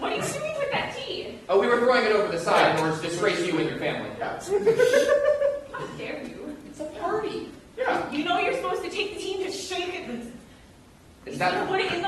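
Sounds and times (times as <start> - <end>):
light chuckling laughter: 4.6 - 5.8.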